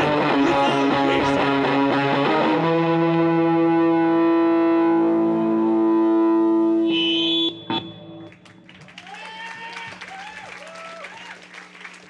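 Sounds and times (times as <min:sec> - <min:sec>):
distorted electric guitar strumming: 0:00.0 - 0:08.6.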